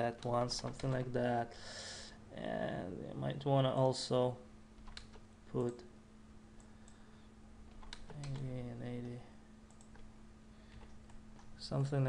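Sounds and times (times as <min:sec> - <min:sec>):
keyboard and mouse clicks: 0:00.2 - 0:01.0, 0:04.8 - 0:05.8, 0:07.7 - 0:08.6, 0:09.7 - 0:10.1.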